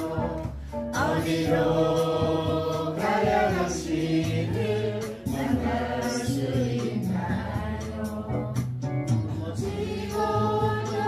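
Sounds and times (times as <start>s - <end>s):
choir-like singing: 0.0s - 11.0s
instrumental backing track: 0.0s - 11.0s.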